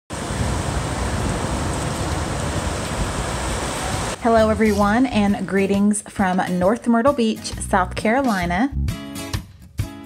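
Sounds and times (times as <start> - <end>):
ocean surf breaking: 0.1 - 5.5
wind on microphone: 0.2 - 4.9.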